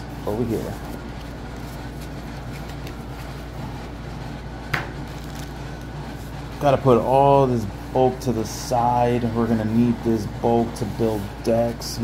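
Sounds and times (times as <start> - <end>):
low room hum: 0.0 - 12.0
cards being handled: 0.4 - 4.1, 4.7 - 6.3.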